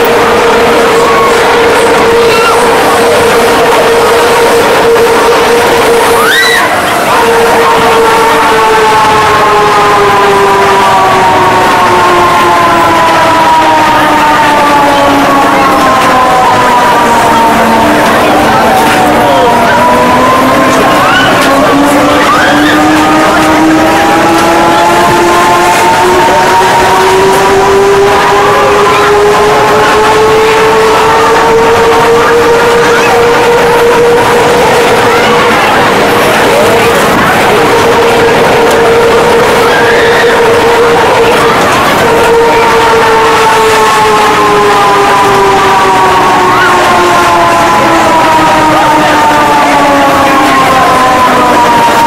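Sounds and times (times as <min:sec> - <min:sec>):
roller coaster train rumbling: 0:00.0 - 0:52.0.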